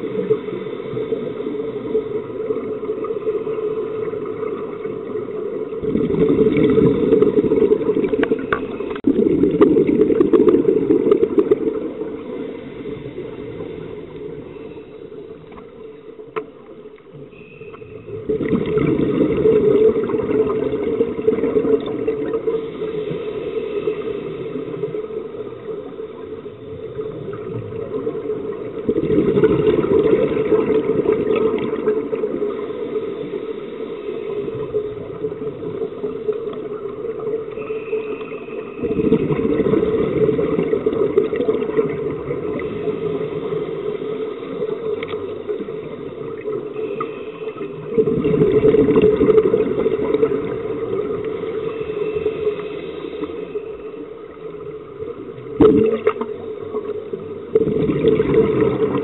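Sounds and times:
low wash of water noise: 0.0 - 59.0
scuba regulator bubbles gurgling: 0.0 - 59.0.

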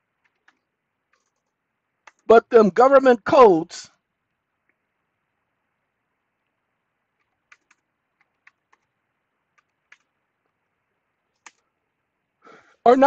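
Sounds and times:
computer keyboard keystrokes: 0.2 - 2.3, 7.2 - 8.9, 9.5 - 10.2, 11.3 - 11.6.

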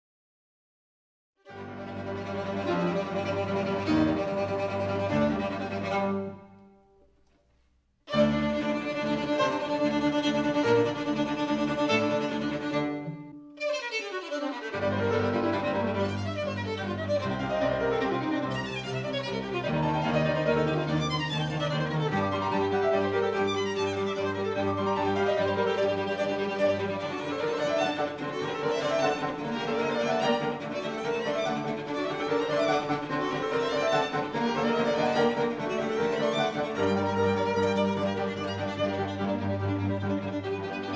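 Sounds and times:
piano trio playing classical music: 1.5 - 7.1, 8.1 - 13.6, 14.2 - 40.9.

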